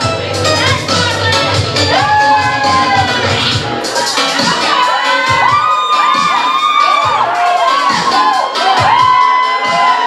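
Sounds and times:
audience cheering and whooping: 1.8s - 10.0s.

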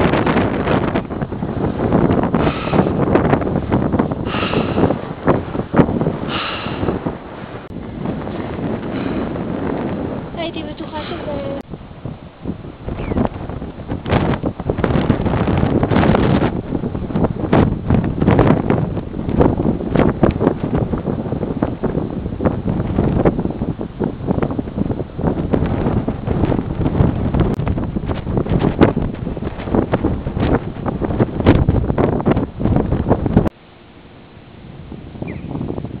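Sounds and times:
wind buffeting microphone: 0.0s - 36.0s.

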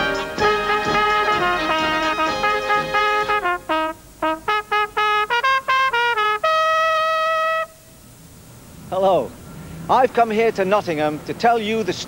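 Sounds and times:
trumpet long high note: 0.0s - 7.9s.

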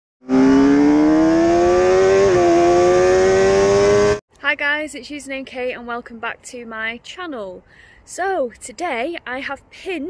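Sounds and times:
high-revving engine accelerating: 0.2s - 4.2s.

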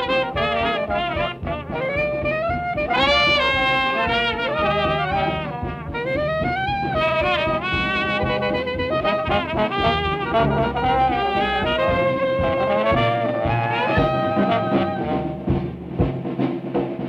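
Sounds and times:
trumpet and trombone melody: 0.0s - 15.8s
jazz band playing a march: 0.0s - 17.0s.

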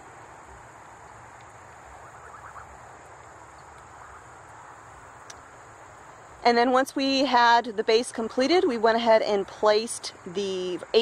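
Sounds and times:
faint insect trill: 0.0s - 11.0s
insects droning: 0.0s - 11.0s.

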